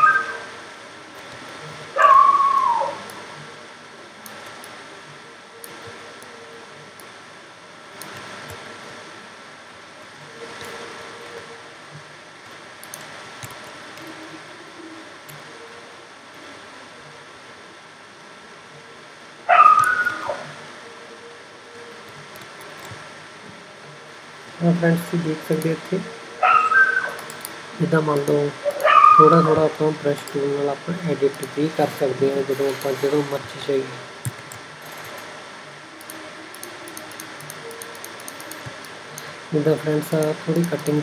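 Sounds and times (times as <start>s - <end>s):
faint room hum: 0.0s - 41.0s
dog whining: 2.0s - 3.0s, 19.5s - 20.5s, 26.4s - 27.2s, 28.7s - 29.5s.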